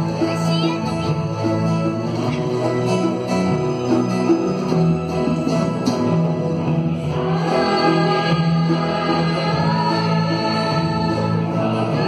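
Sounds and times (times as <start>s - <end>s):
acoustic guitar: 0.0s - 12.0s
mixed choir singing: 5.6s - 12.0s.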